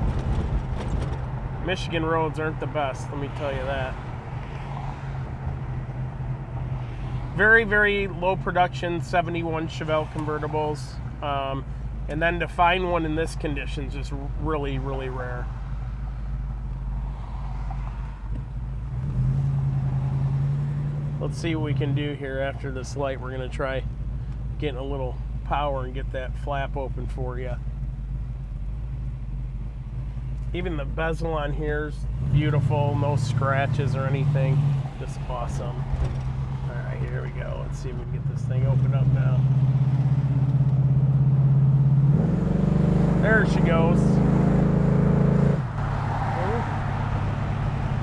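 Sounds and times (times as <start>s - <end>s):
loud deep engine accelerating: 32.0s - 48.0s.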